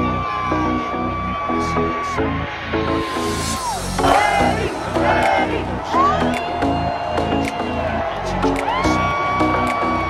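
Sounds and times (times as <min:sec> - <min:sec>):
crowd cheering and whooping: 0:00.0 - 0:10.0
loud music with steady beat: 0:00.0 - 0:10.0.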